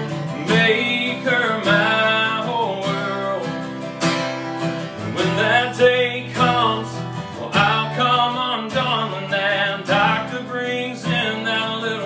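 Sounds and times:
man singing: 0.0s - 4.0s, 4.8s - 12.0s
strummed acoustic guitar: 0.0s - 12.0s.

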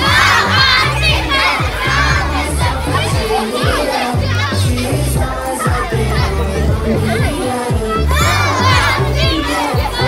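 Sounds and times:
children shouting and cheering: 0.0s - 10.0s
loud dance music: 0.0s - 10.0s.

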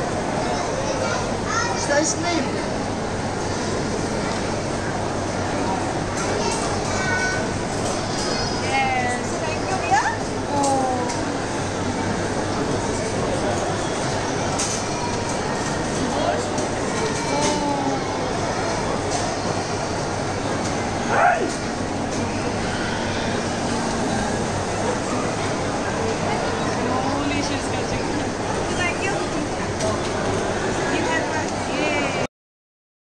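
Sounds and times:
distant chatter: 0.0s - 32.3s
shopping mall hubbub: 0.0s - 32.3s.

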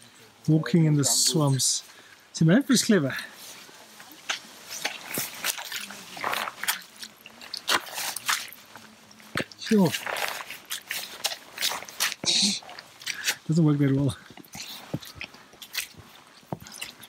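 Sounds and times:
boots squelching through mud: 3.2s - 17.0s.

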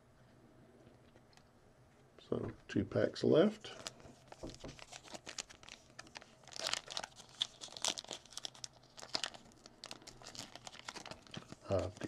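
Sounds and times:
card pack wrapper crinkling and tearing: 3.7s - 12.0s.

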